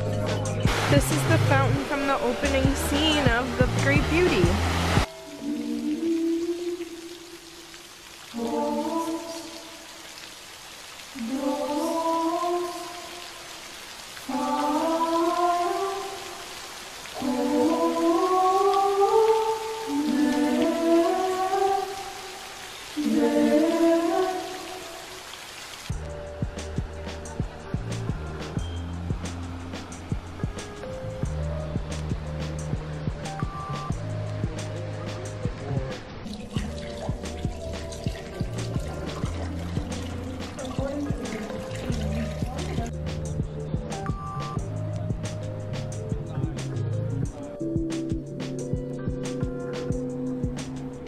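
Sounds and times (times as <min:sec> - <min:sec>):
background music with steady beat: 0:00.0 - 0:07.0, 0:25.9 - 0:51.0
choir singing slow phrases: 0:05.1 - 0:07.5, 0:08.3 - 0:10.1, 0:11.1 - 0:13.6, 0:14.2 - 0:25.2.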